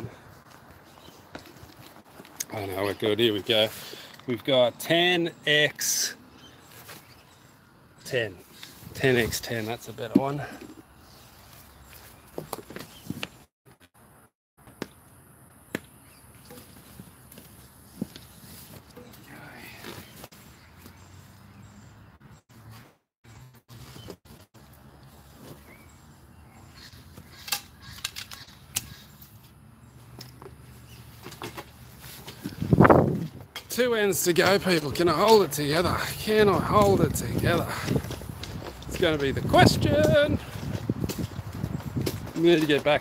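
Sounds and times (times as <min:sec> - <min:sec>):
arrows pulled and handled: 0:27.1 - 0:32.7.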